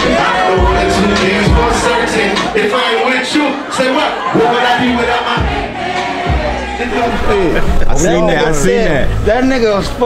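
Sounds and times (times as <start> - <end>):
live hip-hop music: 0.0 - 8.6
crowd cheering and singing: 0.0 - 10.0.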